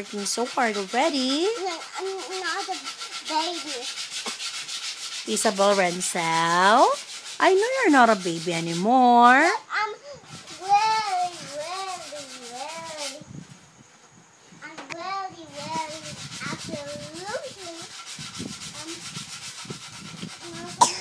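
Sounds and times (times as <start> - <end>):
rubbing and rustling: 0.0 - 21.0
girl making sing-song sounds: 9.6 - 13.3, 14.6 - 17.9, 20.4 - 21.0.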